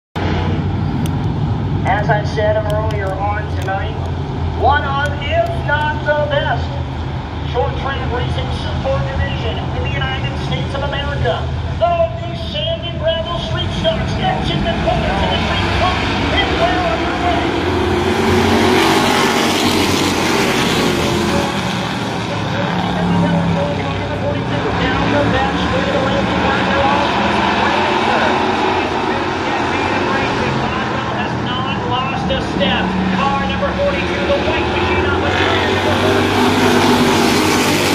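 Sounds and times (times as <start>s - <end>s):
race car engines droning: 0.2s - 37.9s.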